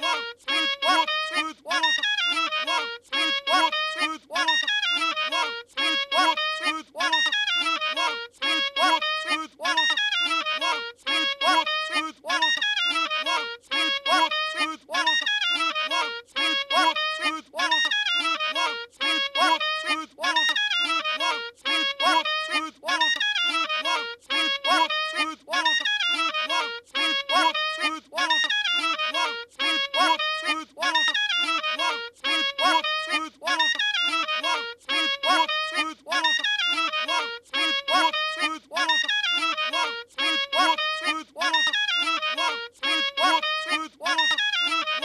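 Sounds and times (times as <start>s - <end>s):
cartoon clarinet phrase: 0.0s - 45.0s
choppy pitched syllables: 0.0s - 45.0s.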